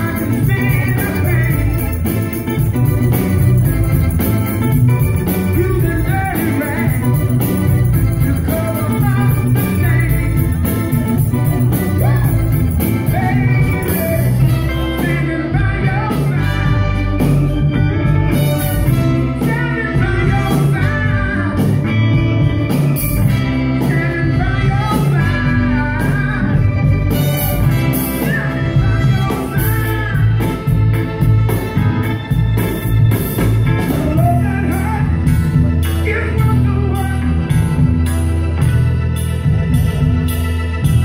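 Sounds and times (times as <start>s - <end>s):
steady bass beat: 0.0s - 15.0s
keyboard: 0.0s - 41.0s
soul band playing: 0.0s - 41.0s.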